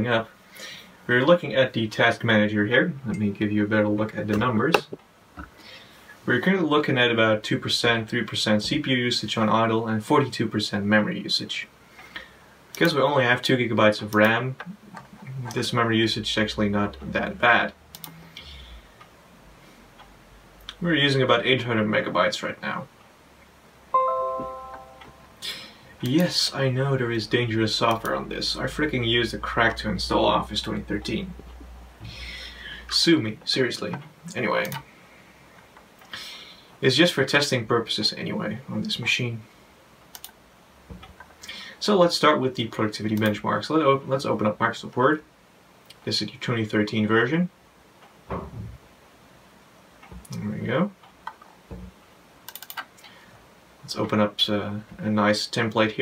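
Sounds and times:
bell-like notification chime: 24.0 - 25.4
laptop clicks: 52.5 - 52.9.

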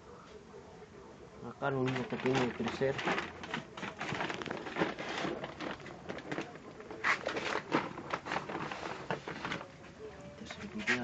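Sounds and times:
plastic bags rustling: 1.7 - 11.0.

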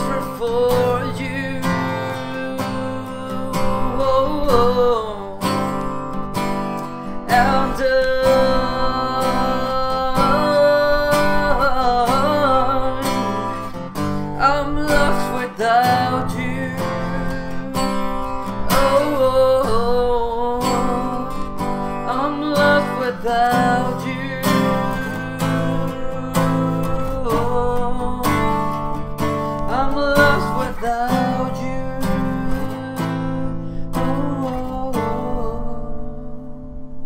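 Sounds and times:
man singing wordlessly: 0.0 - 36.8
acoustic guitar strumming chords: 0.0 - 37.0.

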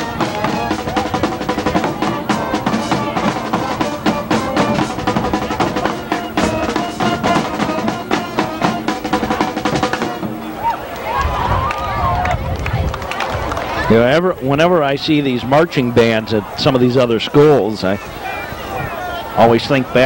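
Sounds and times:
drums beating fast rhythm: 0.0 - 12.4
marching band playing: 0.0 - 12.4
voices: 0.0 - 20.0.

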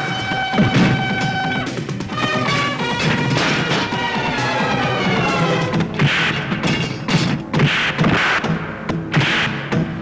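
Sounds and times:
dramatic film score: 0.0 - 10.0
fight impact and crash effects: 0.6 - 1.2, 3.0 - 4.2, 4.8 - 9.8.

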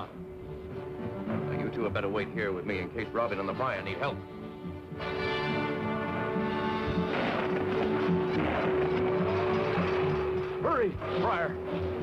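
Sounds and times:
cartoon background music: 0.0 - 12.0.

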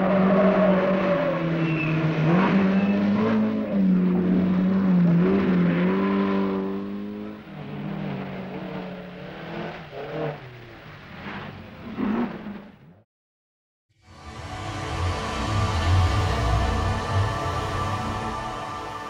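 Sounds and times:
rally car engine revving: 0.0 - 12.8, 14.4 - 19.0.

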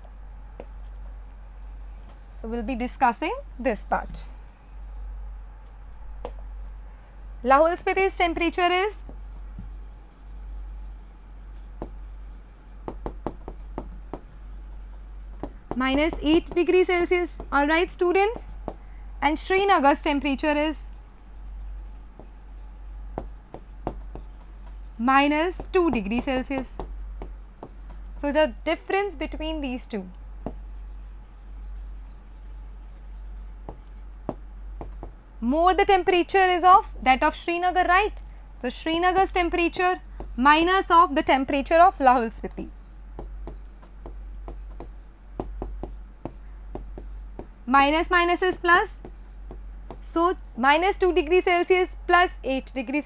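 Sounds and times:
low electrical hum: 0.0 - 53.0
stylus strokes on screen: 0.6 - 5.2, 8.6 - 18.8, 19.8 - 28.3, 30.4 - 34.1, 42.6 - 50.6
pen scratching on board: 9.1 - 17.6, 20.9 - 28.0, 30.4 - 34.1, 42.8 - 47.7, 48.4 - 50.2
stylus tapping on screen: 12.8 - 16.8, 23.2 - 24.9, 25.5 - 28.0, 30.4 - 35.2, 43.2 - 47.6, 48.5 - 50.1.

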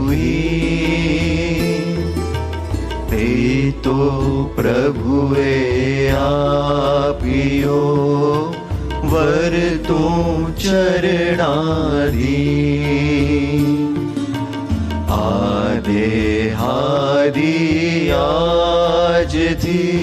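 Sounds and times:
men singing a devotional chant: 0.0 - 2.2, 2.8 - 20.0.

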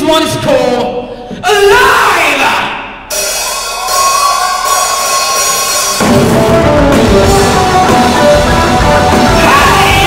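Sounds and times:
drums: 1.3 - 10.0
bass guitar: 6.0 - 10.0.

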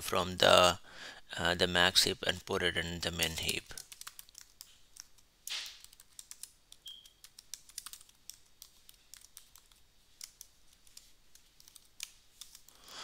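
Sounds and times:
keyboard typing: 3.2 - 12.8.

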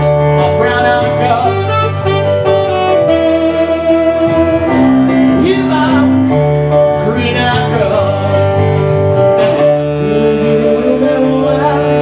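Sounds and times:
electric keyboard: 0.0 - 12.0
saxophone playing: 0.4 - 6.8, 8.4 - 12.0.

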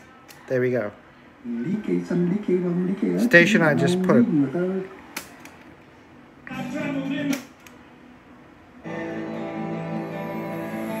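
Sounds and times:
radio music: 6.4 - 7.6.

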